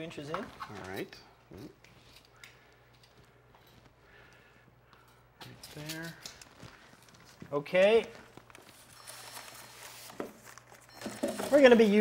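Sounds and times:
faint rustling and handling noise: 0:00.0 - 0:12.0.

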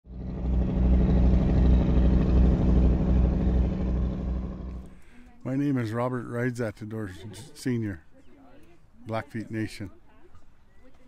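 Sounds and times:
loud low rumble with droning hum: 0:00.0 - 0:05.0.

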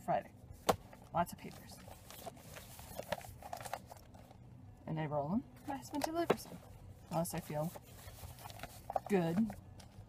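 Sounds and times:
newspaper rustling and crinkling: 0:00.7 - 0:04.4, 0:05.7 - 0:09.6.

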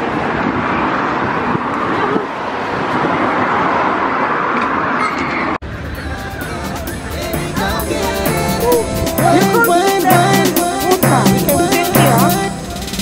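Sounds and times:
road traffic: 0:00.0 - 0:13.0.

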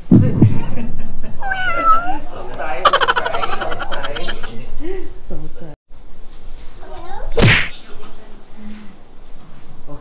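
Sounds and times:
cat meowing: 0:01.4 - 0:02.3.

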